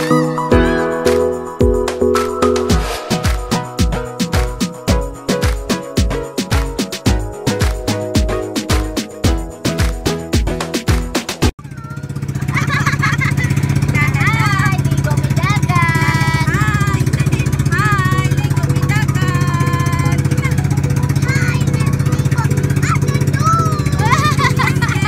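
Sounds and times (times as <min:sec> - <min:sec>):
music: 0:00.0 - 0:11.5, 0:15.2 - 0:25.0
boat engine running: 0:00.0 - 0:25.0.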